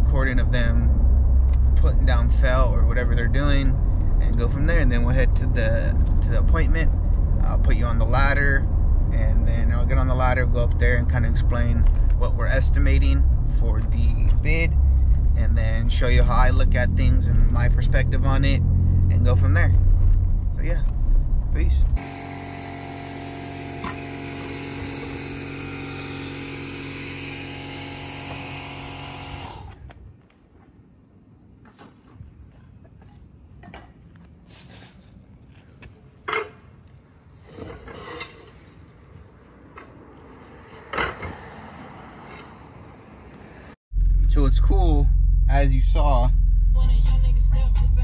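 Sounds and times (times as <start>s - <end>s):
machine motor running: 22.0s - 29.7s.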